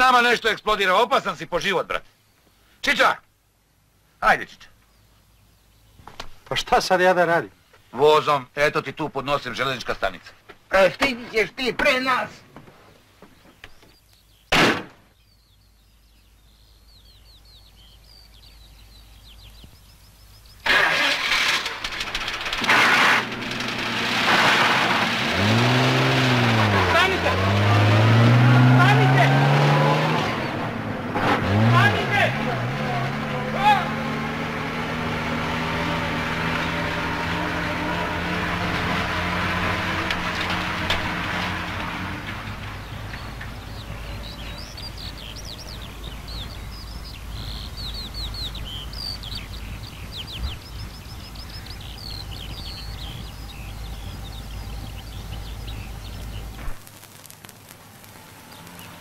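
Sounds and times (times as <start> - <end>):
birds chirping: 0.0 - 24.0, 24.7 - 59.0
bus engine starting and revving: 20.6 - 56.6.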